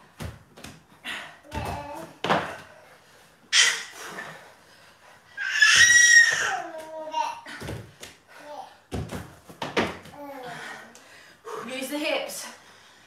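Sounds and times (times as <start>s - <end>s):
dumbbells thudding on floor mats: 0.0s - 2.8s, 5.7s - 8.2s, 8.9s - 10.2s
breathy exertion sounds: 0.9s - 8.9s, 10.1s - 12.0s.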